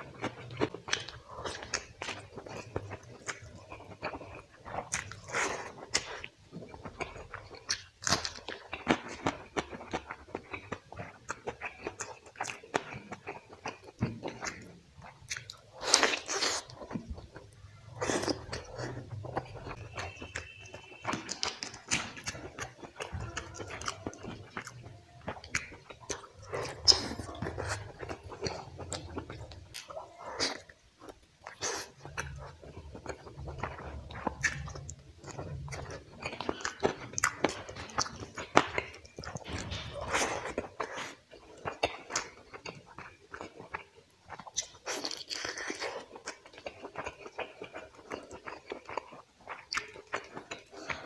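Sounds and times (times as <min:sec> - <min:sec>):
chewing mouth clicks: 0:00.2 - 0:51.0.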